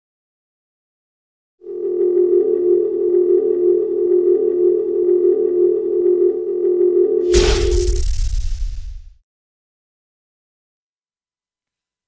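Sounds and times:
steady electronic drone: 0:01.6 - 0:08.1.

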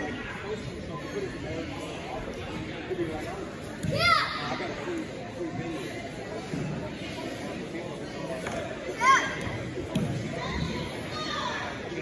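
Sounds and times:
indoor chatter: 0:00.0 - 0:12.0.

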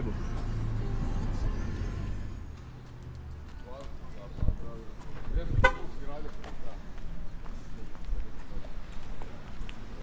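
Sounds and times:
footsteps on paved street: 0:02.4 - 0:10.0.

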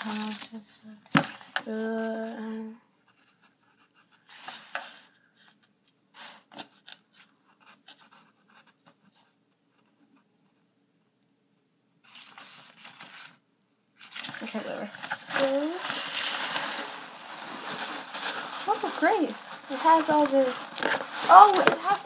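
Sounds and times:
package rustling and scratching: 0:00.0 - 0:02.5, 0:12.0 - 0:13.4, 0:14.0 - 0:22.0.

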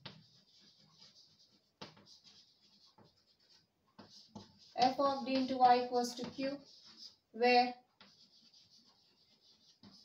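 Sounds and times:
chalk scratching on blackboard: 0:00.0 - 0:10.0
chalk tap: 0:00.0 - 0:10.0.

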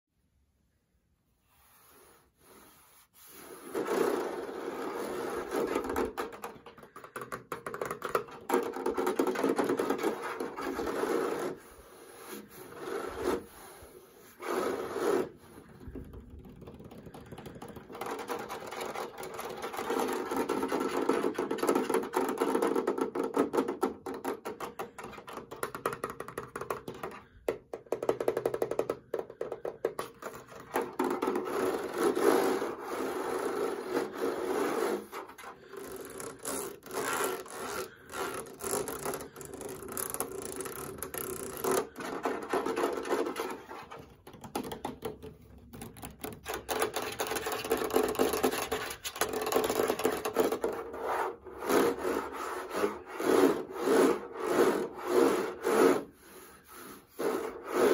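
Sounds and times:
fingernails scratching plastic: 0:02.9 - 0:57.9.

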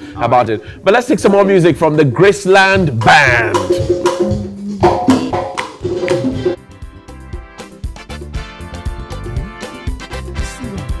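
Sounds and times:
hand drums and percussion: 0:02.7 - 0:06.8
live band music: 0:02.7 - 0:11.0.

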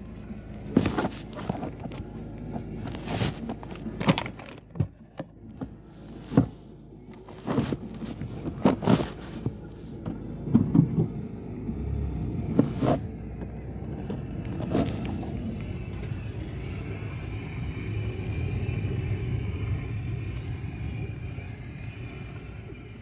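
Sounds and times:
car engine running: 0:00.0 - 0:23.0.

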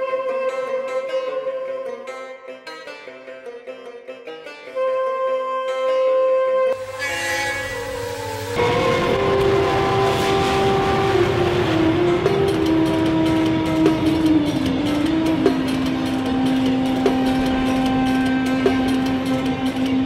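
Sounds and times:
train wheels rumbling on rail: 0:06.8 - 0:20.0.

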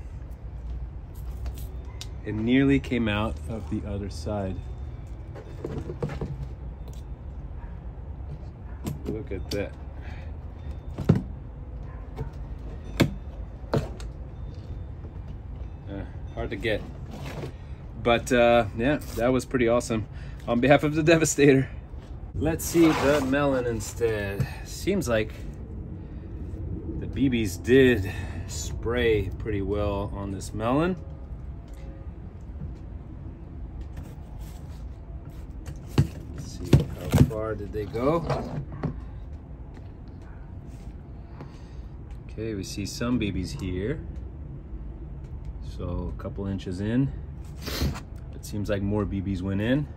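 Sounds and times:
low steady rumble: 0:00.0 - 0:49.9.

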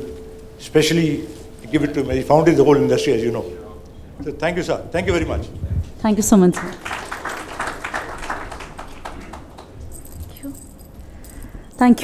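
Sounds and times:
woman speaking into microphone: 0:06.0 - 0:06.7, 0:11.8 - 0:12.0.

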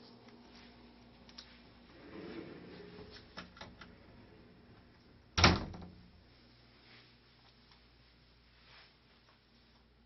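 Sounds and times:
door shutting with a bang: 0:05.4 - 0:06.0.

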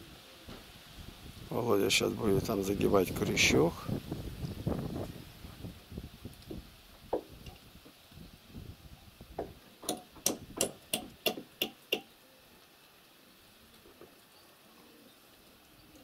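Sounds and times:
hammer striking nail: 0:09.8 - 0:12.1.

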